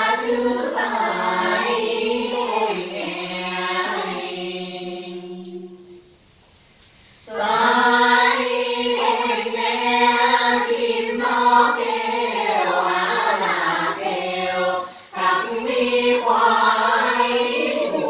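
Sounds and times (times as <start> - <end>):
group singing in unison: 0.0 - 6.1, 7.3 - 18.0.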